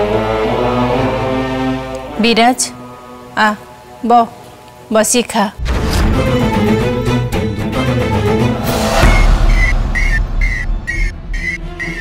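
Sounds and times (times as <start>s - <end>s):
rising whoosh: 8.4s - 12.0s
deep rumbling boom: 8.6s - 12.0s
high pulsing tone: 8.7s - 12.0s.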